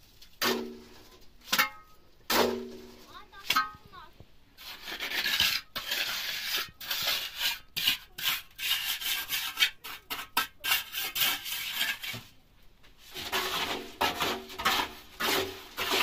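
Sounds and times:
hand tool scraping mortar: 4.6 - 12.4, 13.0 - 16.0.

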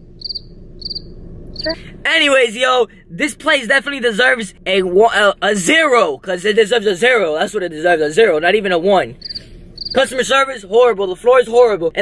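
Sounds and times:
cricket chirping: 0.0 - 1.8, 9.2 - 10.1.

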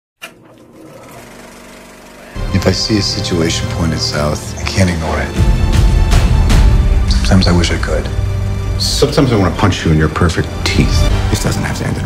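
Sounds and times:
film projector clattering: 0.2 - 2.3.

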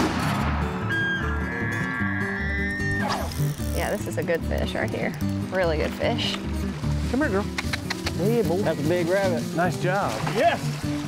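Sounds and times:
elk bugling whistle: 0.8 - 3.3.

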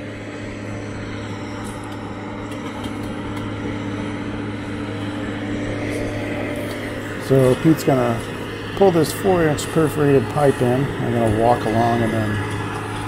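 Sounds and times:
tractor engine droning: 0.0 - 13.0.

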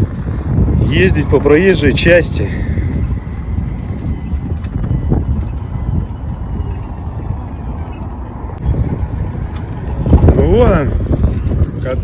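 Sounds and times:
traffic rumble: 0.0 - 12.0
wind on microphone: 0.0 - 12.0.

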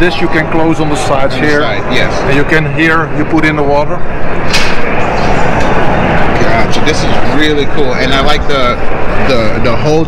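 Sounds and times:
busy exhibition hall din: 0.0 - 10.0
sharp knock: 4.5 - 5.0.

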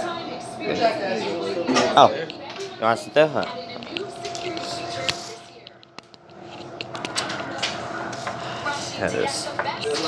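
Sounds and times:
faint voices: 0.0 - 10.0
steady hum: 0.0 - 10.0.

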